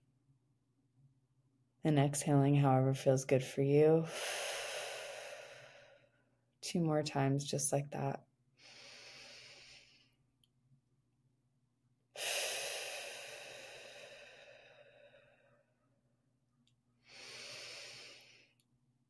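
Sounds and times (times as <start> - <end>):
woman breathing deeply: 4.1 - 6.3, 8.6 - 10.2, 12.2 - 15.8, 17.0 - 18.6.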